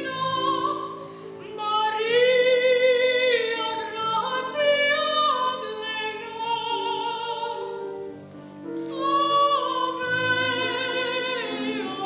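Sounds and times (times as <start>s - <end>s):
woman singing classical: 0.0s - 12.0s.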